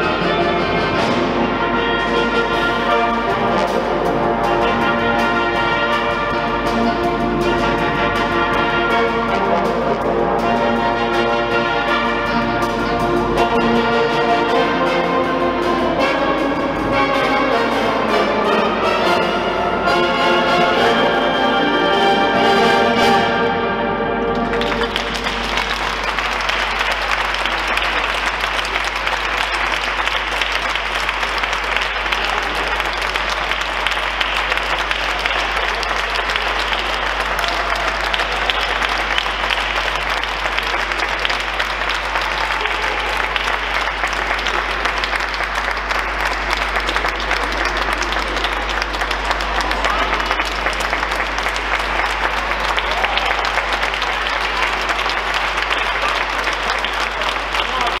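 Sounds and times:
audience applauding: 24.2s - 58.0s.

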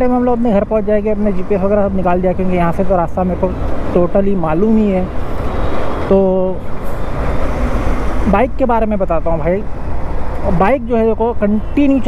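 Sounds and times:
motorcycle riding in traffic: 0.0s - 12.0s.

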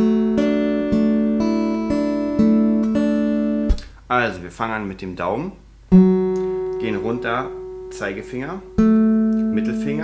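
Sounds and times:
acoustic guitar fingerpicked: 0.0s - 4.0s, 5.9s - 10.0s
guitar strings damped with thump: 3.6s - 4.0s.

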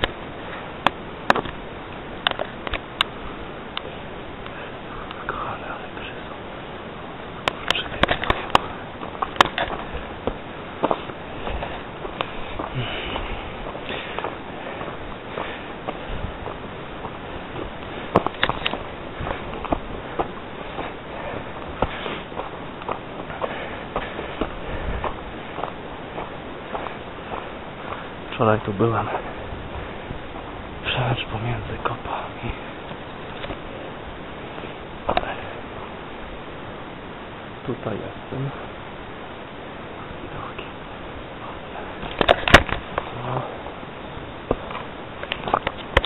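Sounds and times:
footsteps on stony trail: 0.0s - 5.8s, 7.4s - 36.1s, 41.4s - 43.7s, 44.3s - 46.0s
steady hiss: 0.0s - 46.0s.

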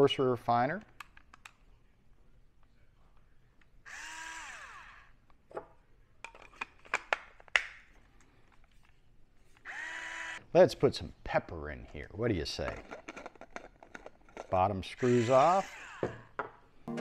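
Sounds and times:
grinder motor whine: 3.9s - 5.1s, 9.7s - 10.4s, 15.0s - 16.2s.

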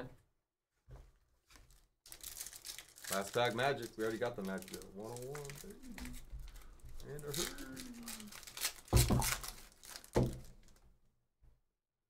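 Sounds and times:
foil wrapper crinkling: 1.5s - 10.8s
foil wrapper ripping: 1.5s - 10.8s.

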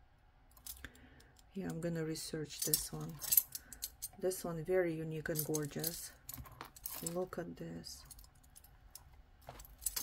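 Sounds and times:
metal necklace clinking: 2.5s - 4.2s, 5.2s - 7.4s, 8.0s - 10.0s.

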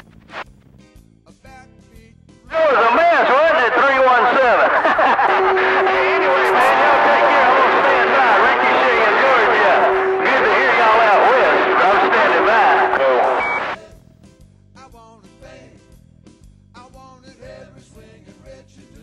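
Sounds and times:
garbled overlapping radio voices: 2.5s - 13.8s
short high beep: 5.0s - 13.8s.

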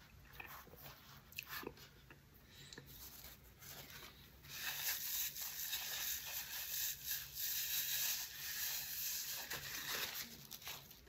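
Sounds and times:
paper crinkling: 7.6s - 11.0s.

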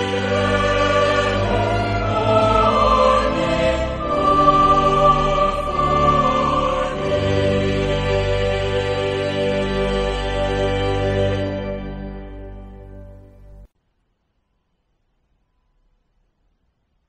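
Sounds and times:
choir singing a hymn: 0.0s - 13.0s
organ accompaniment: 0.0s - 13.7s.

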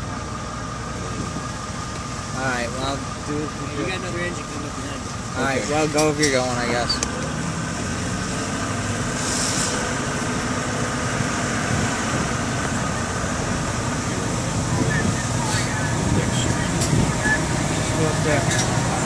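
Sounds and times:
vehicle engine and road noise: 0.0s - 19.0s
short hiss: 9.2s - 9.9s.

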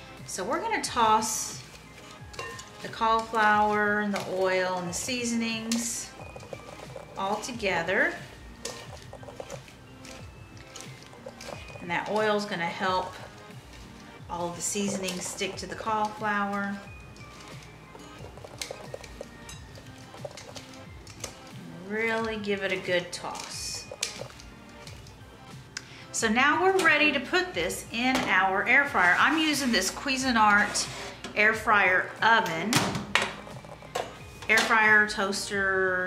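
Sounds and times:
quiet background music: 0.0s - 36.0s
spatula scraping in glass bowl: 1.1s - 20.8s
utensil clicking against glass bowl: 5.6s - 7.5s, 8.6s - 12.3s, 17.4s - 21.4s, 23.4s - 25.0s.

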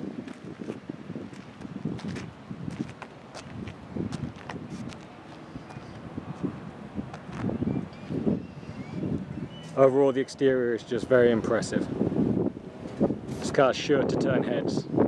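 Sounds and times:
footsteps on asphalt: 0.0s - 7.7s
wind on microphone: 0.0s - 15.0s.

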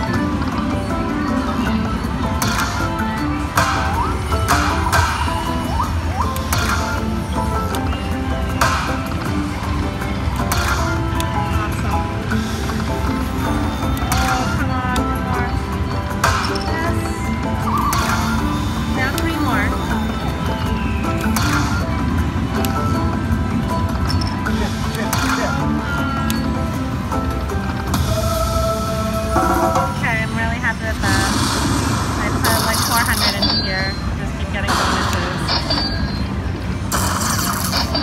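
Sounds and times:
slot machine bonus music: 0.0s - 38.0s.

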